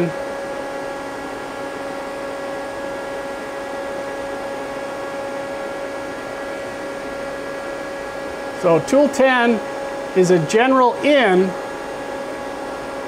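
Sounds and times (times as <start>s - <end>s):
lathe machine humming: 0.0s - 13.0s.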